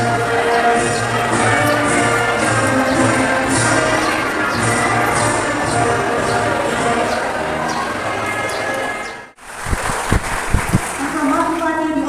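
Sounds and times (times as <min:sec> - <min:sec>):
music over public-address system: 0:00.0 - 0:09.3
woman speaking over loudspeaker: 0:11.0 - 0:12.0.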